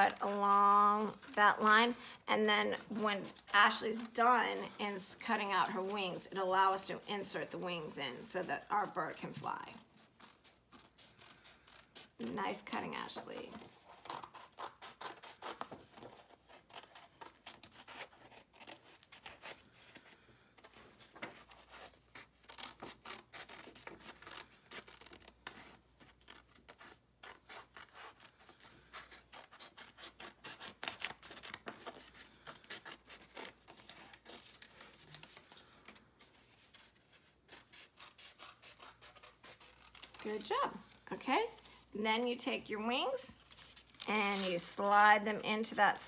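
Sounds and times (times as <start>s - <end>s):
scissors snipping paper: 0.0s - 36.0s, 36.7s - 45.7s.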